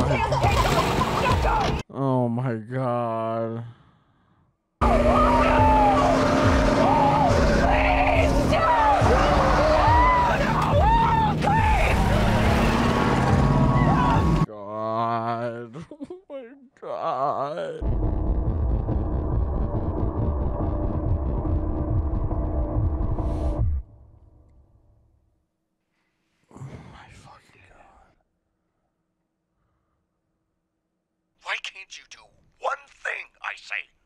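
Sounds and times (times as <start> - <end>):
pickup truck engine pulling away: 4.8 - 9.8, 11.8 - 14.4
man whispering: 26.5 - 28.2, 31.4 - 33.9.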